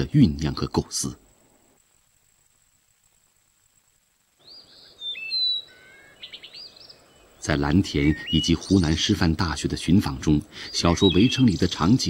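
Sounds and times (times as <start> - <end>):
songbird singing: 4.3 - 12.0.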